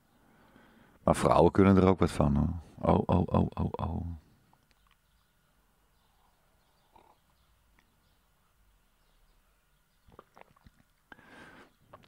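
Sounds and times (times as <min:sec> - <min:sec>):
faint background hum: 0:00.0 - 0:12.0.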